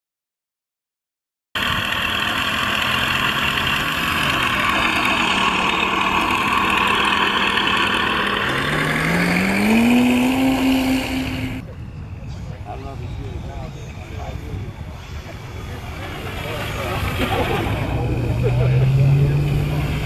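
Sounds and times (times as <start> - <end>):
model plane engine and propeller: 1.6 - 20.0.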